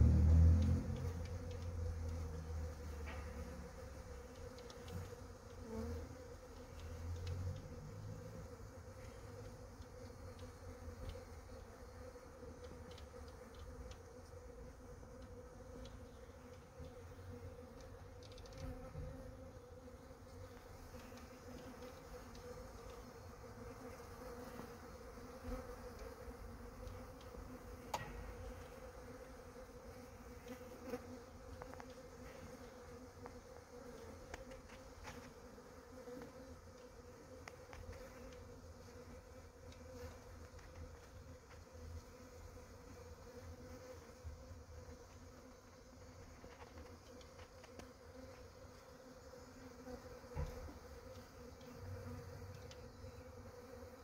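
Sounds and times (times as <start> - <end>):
bee swarm buzzing: 0.0 - 54.0.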